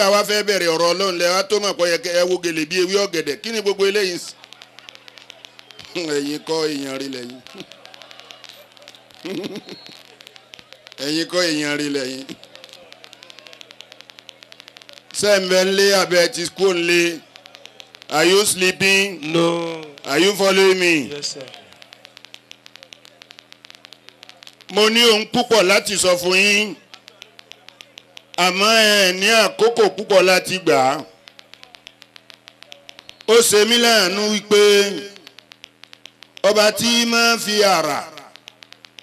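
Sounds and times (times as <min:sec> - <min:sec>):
low electrical hum: 0:00.0 - 0:39.0
rapid electrical ticking: 0:00.0 - 0:39.0.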